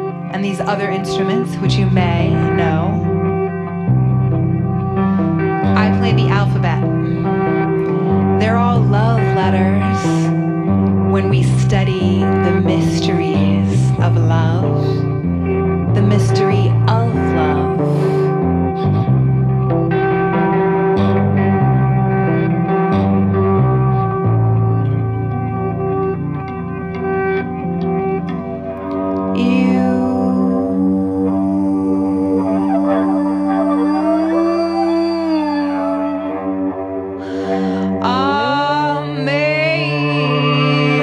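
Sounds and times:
electric string instrument with echo: 0:00.0 - 0:41.0.

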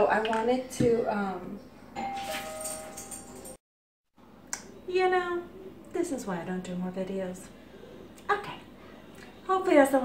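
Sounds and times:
bell-like ringing tones: 0:02.0 - 0:03.6.

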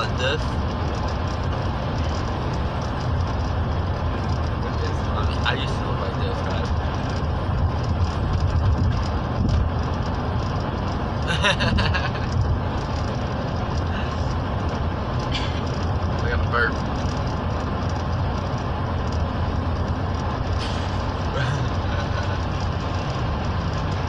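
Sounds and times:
car cabin road and engine noise: 0:00.0 - 0:24.0.

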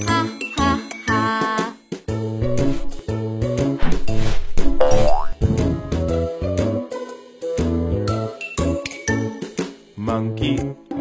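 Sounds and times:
cheerful children's song music: 0:00.0 - 0:02.4, 0:04.8 - 0:11.0
cartoon boing sound effect: 0:04.8 - 0:05.4.

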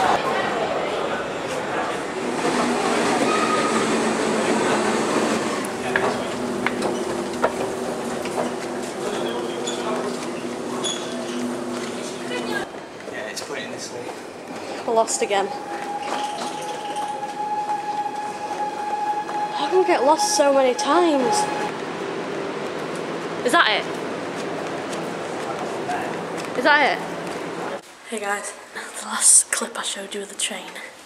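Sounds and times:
train rumbling: 0:00.0 - 0:27.8.

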